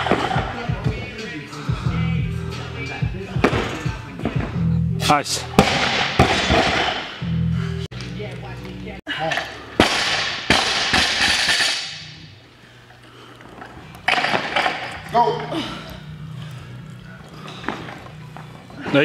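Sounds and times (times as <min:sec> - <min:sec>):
music: 0:00.0 - 0:09.0, 0:14.9 - 0:19.0
barbell dropped on gym floor: 0:05.6 - 0:07.1.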